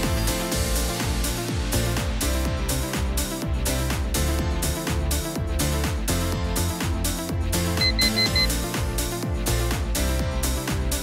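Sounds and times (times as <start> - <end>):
electronic workout music: 0.0 - 11.0
quick high timer beeps: 7.8 - 8.5.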